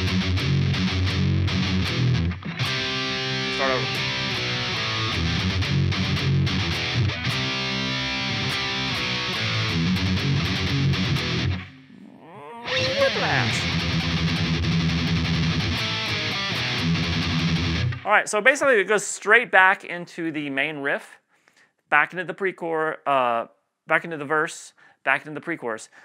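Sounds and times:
distorted electric guitar riff: 0.0s - 18.1s.

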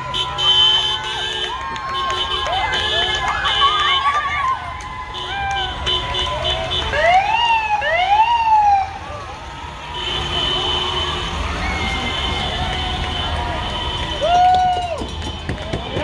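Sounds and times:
people shouting: 0.2s - 15.1s
police car siren sweeping: 6.9s - 9.8s.

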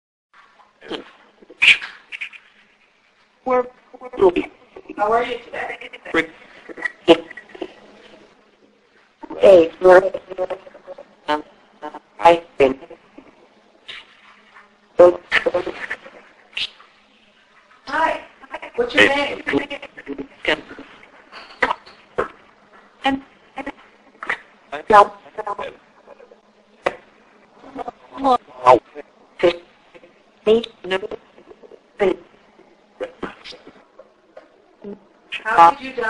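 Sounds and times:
garbled voice fragments through speaker: 0.8s - 2.6s, 3.4s - 8.4s, 9.2s - 14.2s, 15.0s - 16.8s, 17.8s - 34.1s, 34.8s - 36.0s.

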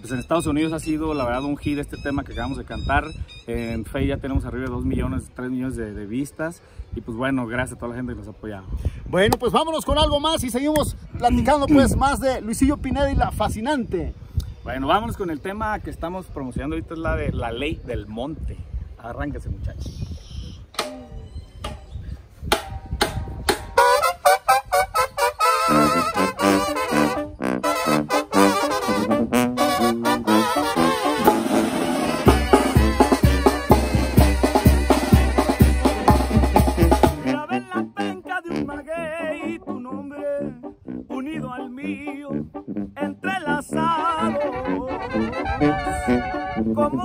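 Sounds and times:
tuba: 23.5s - 47.0s
brass band playing live: 23.7s - 47.0s
bass drum with cymbal: 31.2s - 37.2s
snare drum: 31.2s - 37.2s.

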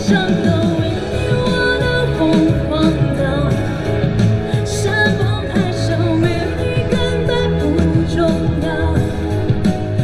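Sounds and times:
woman singing pop ballad: 0.0s - 10.0s.

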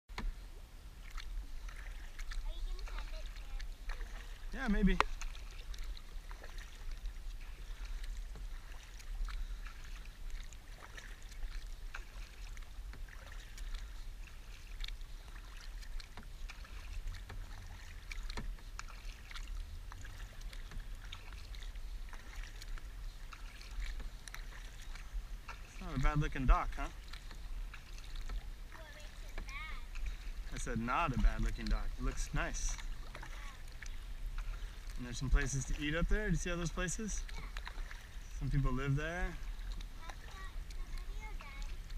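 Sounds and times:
paddle splashing water: 0.1s - 41.9s
child asking a question: 2.4s - 3.7s, 28.7s - 29.9s, 33.3s - 33.6s, 37.2s - 37.7s, 40.0s - 41.8s.

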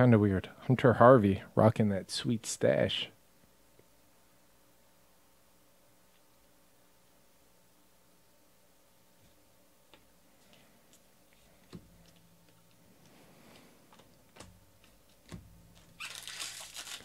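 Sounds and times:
foil pack crackling: 15.8s - 17.0s.

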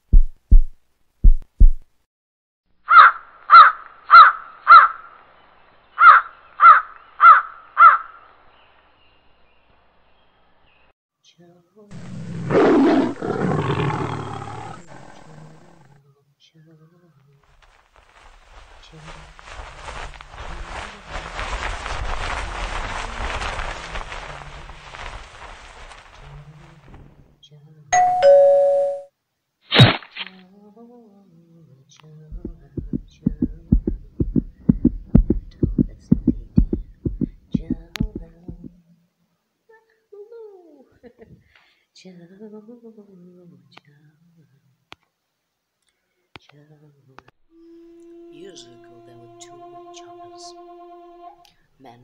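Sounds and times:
low thumps in pairs: 0.0s - 1.9s, 32.3s - 38.8s
loud animal roar: 12.0s - 16.0s.

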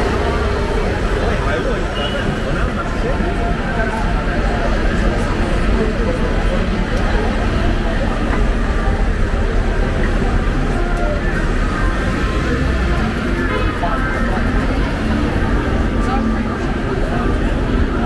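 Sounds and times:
buses: 0.0s - 18.0s
passers-by talking: 0.0s - 18.0s
vehicle engines rumbling: 0.0s - 18.0s.

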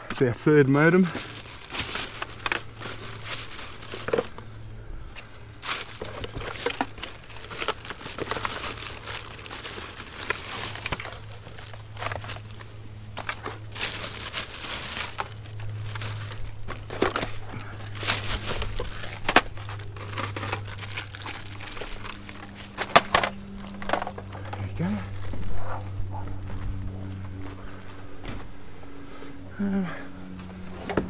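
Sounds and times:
steady low hum: 0.0s - 31.0s
plastic bag crinkling: 0.9s - 4.5s, 5.6s - 25.6s.

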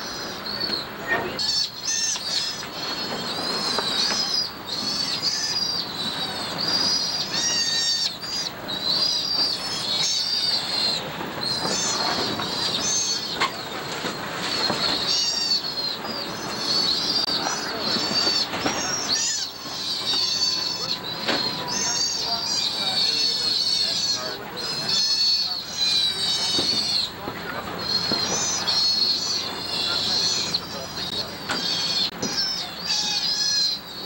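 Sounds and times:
sea otter pups squealing: 0.0s - 13.8s, 14.4s - 34.0s
steady background noise: 0.0s - 34.0s.

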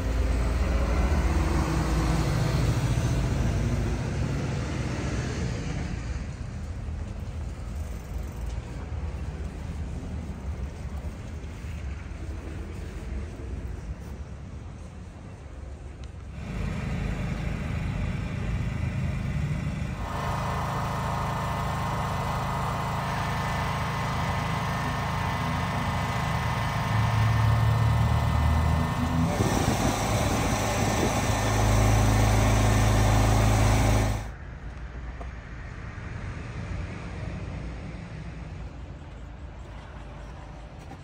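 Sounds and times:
machine engine humming: 16.2s - 34.4s.

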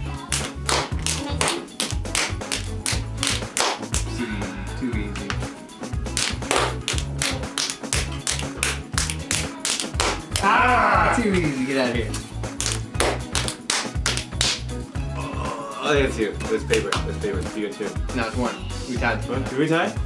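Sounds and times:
background music with low beat: 0.0s - 20.0s
rhythmic hand taps and claps: 0.2s - 4.2s, 5.1s - 10.5s, 12.1s - 14.9s, 16.7s - 17.6s.

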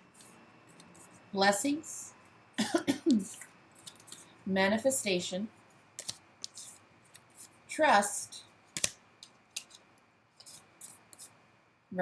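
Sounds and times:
cards sliding and flicking: 3.8s - 4.3s, 6.0s - 7.6s, 8.7s - 11.4s.

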